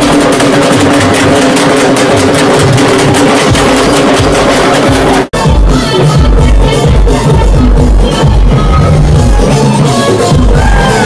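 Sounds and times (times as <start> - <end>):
big drum beats: 0.0 - 11.0.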